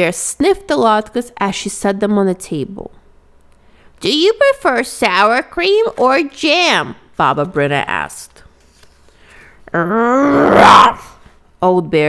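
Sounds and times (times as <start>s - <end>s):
person imitating bear growl: 9.7s - 11.2s.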